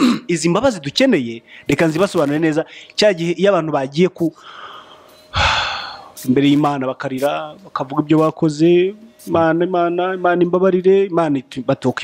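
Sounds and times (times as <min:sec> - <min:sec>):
man speaking: 0:00.0 - 0:04.4, 0:06.2 - 0:12.0.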